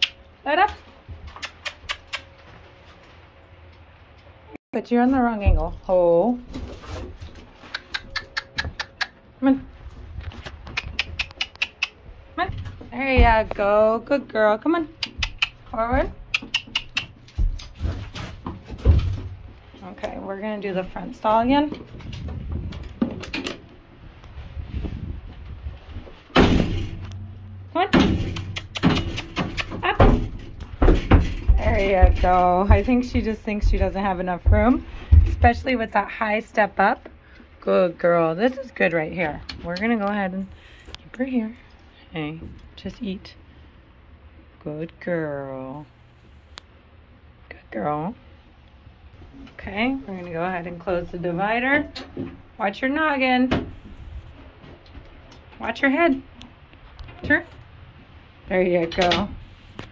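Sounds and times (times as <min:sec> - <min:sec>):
horse hooves on gravel: 0:12.0 - 0:14.2, 0:28.4 - 0:36.2
low rumble: 0:12.0 - 0:14.8, 0:17.1 - 0:28.4.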